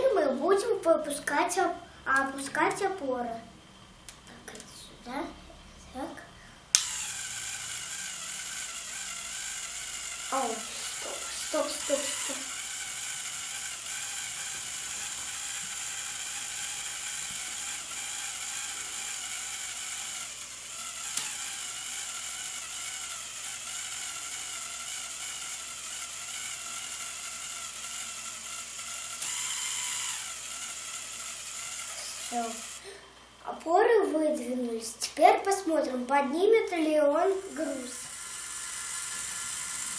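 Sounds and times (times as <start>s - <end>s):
toy motor and gears whirring: 6.7s - 33.0s, 34.0s - 39.9s.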